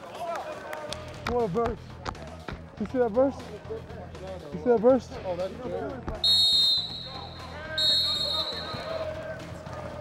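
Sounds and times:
whistle blast: 6.2 - 9.0.

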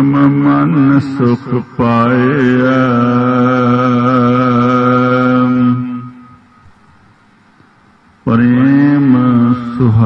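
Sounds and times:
man chanting: 0.0 - 6.3, 8.2 - 10.0.

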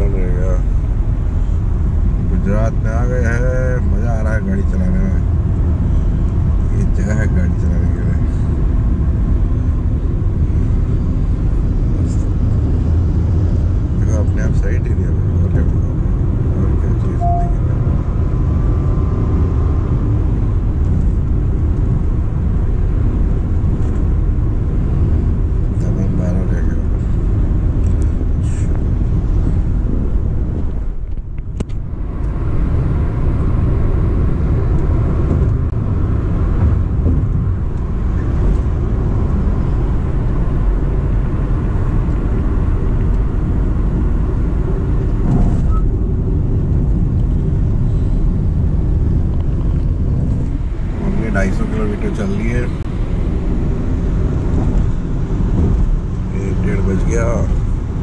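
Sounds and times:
road and tyre rumble in car cabin: 0.0 - 58.0.

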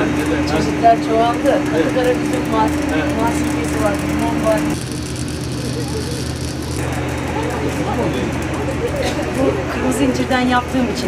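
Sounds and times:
people talking: 0.0 - 4.8, 5.5 - 11.0
low background hum: 0.0 - 11.0
held tone: 3.7 - 8.2.

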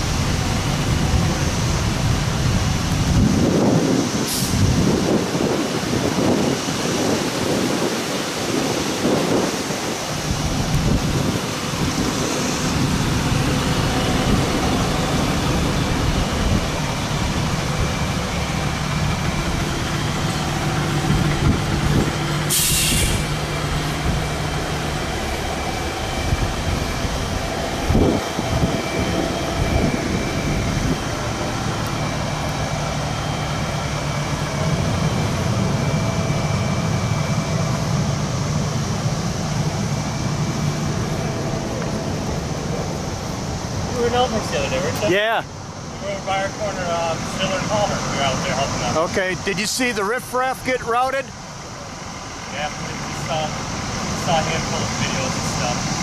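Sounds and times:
diesel engines running: 0.0 - 56.0
air brakes hissing: 4.2 - 4.8, 11.6 - 34.4.

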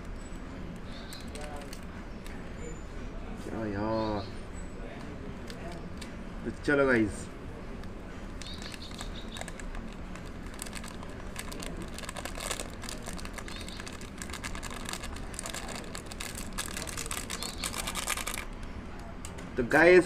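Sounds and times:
sachet crinkling: 0.8 - 2.4, 7.8 - 18.7.

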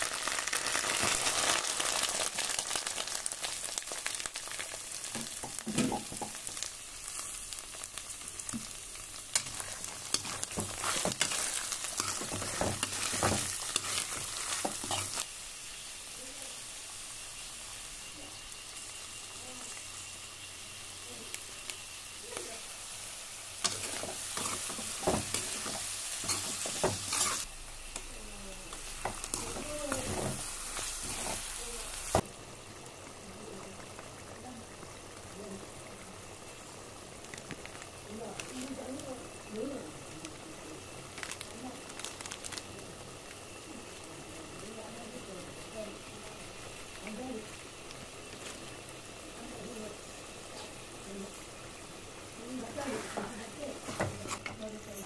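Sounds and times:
vegetables sizzling in hot oil: 0.0 - 55.0
metal spatula scraping pan: 23.7 - 27.5.

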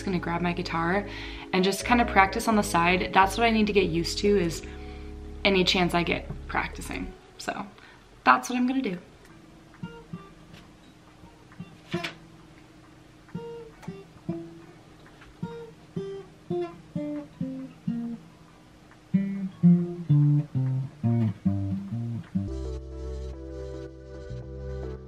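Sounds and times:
acoustic guitar notes picked: 0.0 - 7.6, 9.3 - 12.6, 13.3 - 18.4, 19.1 - 23.4.

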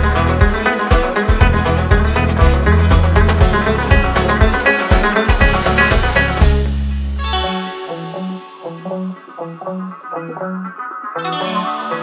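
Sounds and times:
plucked guitar melody: 0.0 - 12.0.

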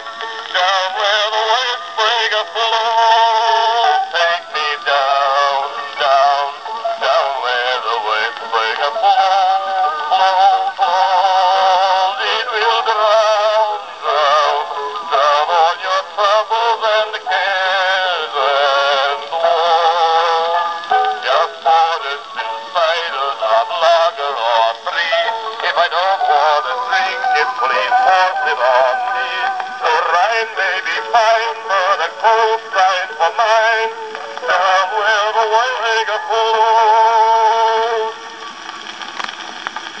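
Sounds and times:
man singing with vibrato: 0.0 - 38.4
cylinder surface hiss: 0.0 - 40.0
sharp crackles: 0.0 - 40.0.

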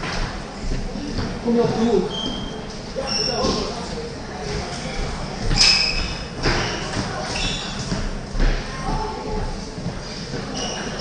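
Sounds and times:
shoe squeaks: 2.0 - 3.7, 5.4 - 8.1, 10.4 - 11.0.

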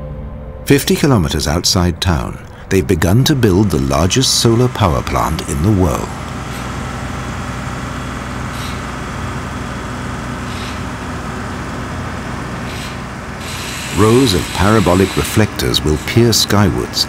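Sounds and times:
low mechanical rumble: 0.7 - 17.0.

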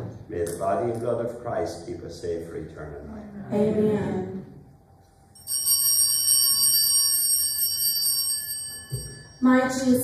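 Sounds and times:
altar bells ringing: 5.3 - 10.0.

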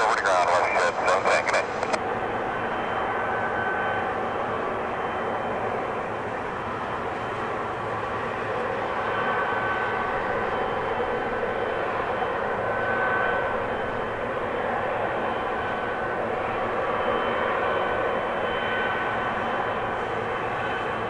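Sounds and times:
jet engines running: 0.0 - 21.0.

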